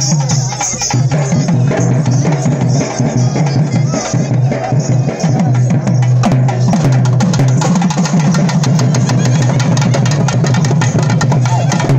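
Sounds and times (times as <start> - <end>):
fast barrel drum drumming: 0.0 - 11.9.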